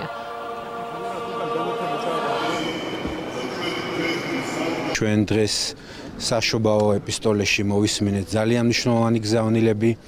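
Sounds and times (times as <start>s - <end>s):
church choir chanting: 0.0s - 5.0s.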